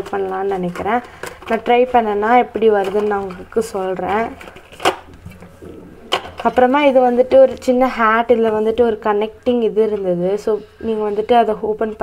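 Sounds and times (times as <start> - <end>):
woman speaking: 0.0 - 4.4, 5.6 - 12.0.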